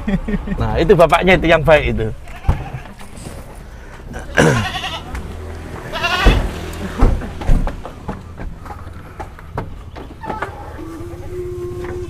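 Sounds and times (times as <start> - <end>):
farm animal bleating: 2.2 - 3.2, 4.2 - 5.2, 5.9 - 6.6
dull thumps: 6.2 - 10.6.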